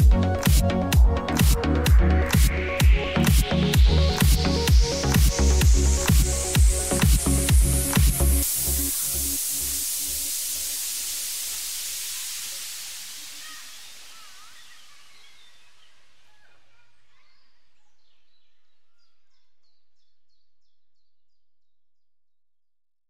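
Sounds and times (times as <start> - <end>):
electronic dance music: 0.0 - 15.1
hissing wash: 4.9 - 15.2
faint high chirps: 6.9 - 21.2.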